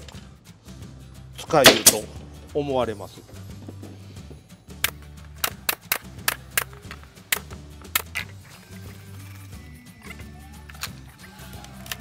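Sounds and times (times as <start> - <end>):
background music: 0.0 - 12.0
staple gun shots: 1.6 - 2.2.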